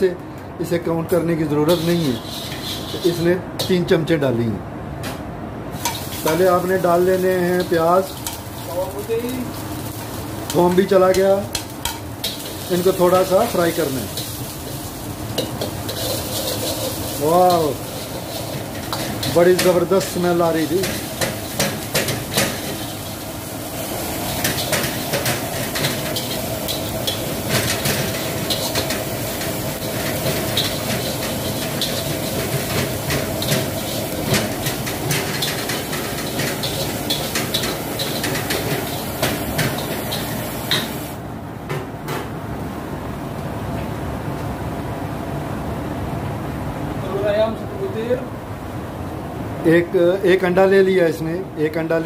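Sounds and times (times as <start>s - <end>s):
gas burner roaring: 0.0s - 50.3s
onions sizzling: 1.1s - 4.1s, 5.7s - 41.3s
metal spatula scraping a wok: 1.7s - 3.4s, 11.8s - 19.8s, 24.1s - 41.1s.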